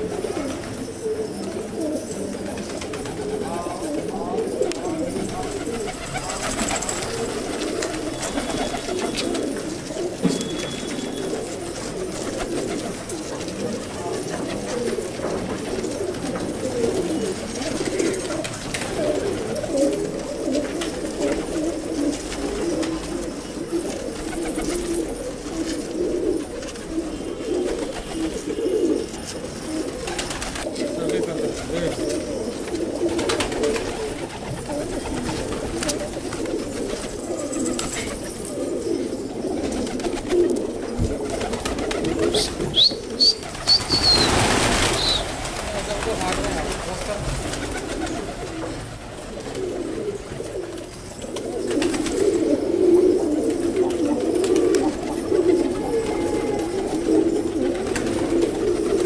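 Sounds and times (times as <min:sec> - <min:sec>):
pigeons cooing: 0:00.0 - 0:59.0.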